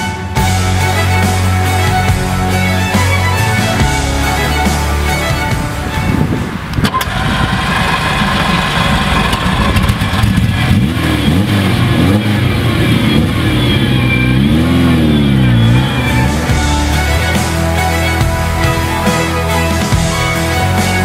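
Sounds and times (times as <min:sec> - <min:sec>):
car engine starting and revving: 0:00.4 - 0:21.0.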